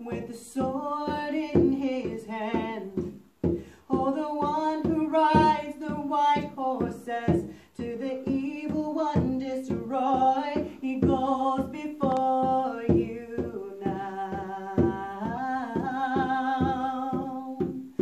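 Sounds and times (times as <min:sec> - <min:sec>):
conga drum beat: 0:00.0 - 0:18.0
woman singing long notes: 0:00.0 - 0:18.0.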